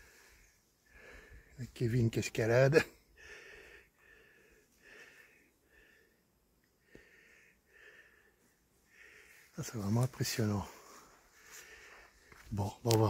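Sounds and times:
quick breathing: 3.2s - 6.2s, 6.8s - 9.5s, 10.7s - 12.3s.

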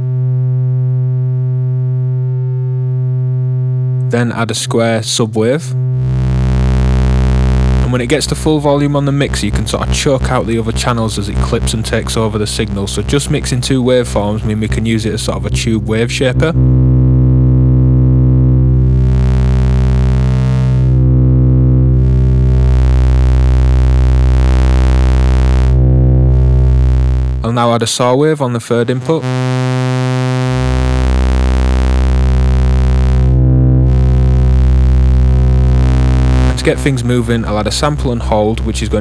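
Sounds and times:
deeper synth sub tone: 0.0s - 4.2s, 5.7s - 27.6s, 28.7s - 39.0s
buzzy synth tone: 0.0s - 39.0s
fuzzy distorted harmonics: 0.0s - 39.0s.

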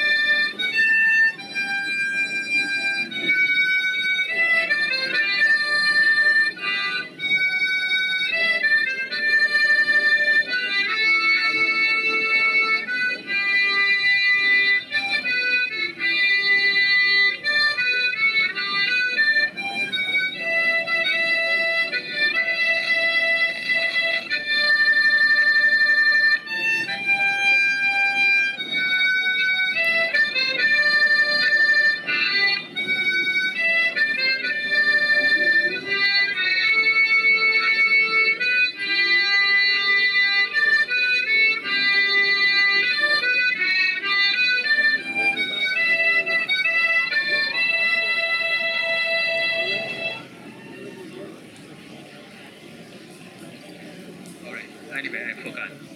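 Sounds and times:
harmonica melody and chords: 0.0s - 51.3s.

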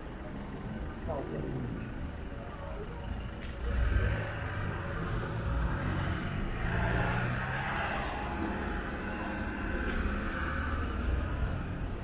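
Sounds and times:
engine and tyre rumble: 0.0s - 12.0s.

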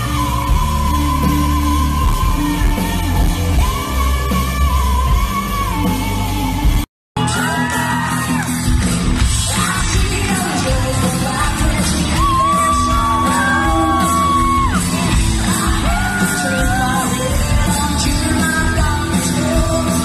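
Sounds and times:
woman singing lead: 0.0s - 8.5s, 9.4s - 20.0s
live rock band: 0.0s - 20.0s.

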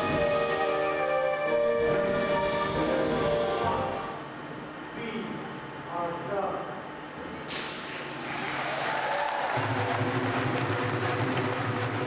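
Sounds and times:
orchestral music: 0.0s - 4.2s, 9.6s - 12.0s
applause: 8.3s - 12.0s.

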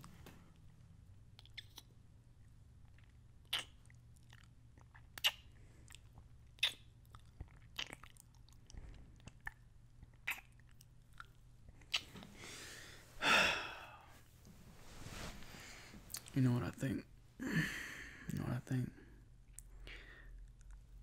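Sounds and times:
lip smacking kisses: 3.4s - 3.8s, 5.2s - 5.5s, 6.6s - 6.9s, 11.9s - 12.3s
loud breath: 12.3s - 14.2s, 17.4s - 18.3s.

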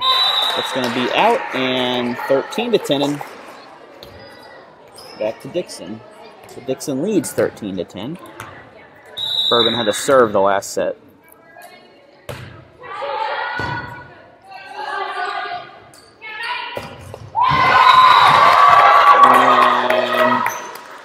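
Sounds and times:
shouting and cheering: 0.0s - 3.2s, 17.4s - 20.9s
players calling out: 0.0s - 3.7s, 9.2s - 10.6s, 17.4s - 20.7s
volleyball hits: 12.3s - 12.7s, 13.6s - 14.0s, 16.8s - 19.5s.

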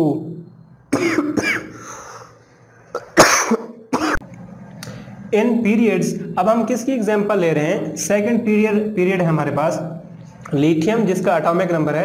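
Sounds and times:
man clearing his throat: 0.9s - 1.8s, 2.9s - 4.2s
man coughing: 0.9s - 1.9s, 2.9s - 4.2s.

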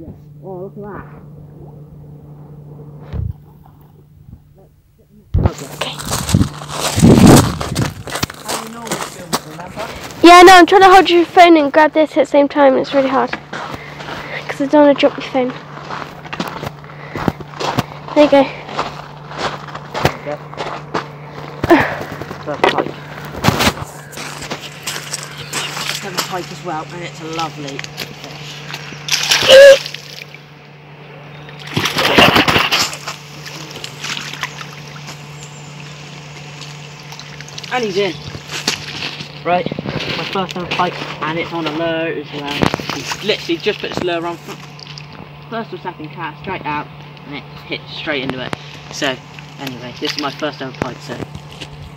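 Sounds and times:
dry leaves crunching underfoot: 5.5s - 10.5s, 15.2s - 30.2s, 31.6s - 41.8s
fish splashing in water: 28.6s - 30.4s, 31.4s - 39.0s.

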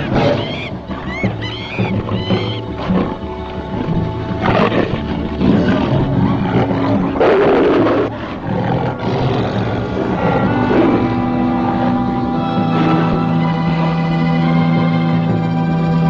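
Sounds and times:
big cats roaring and snarling: 0.0s - 15.4s
orchestral film music: 0.0s - 16.0s.

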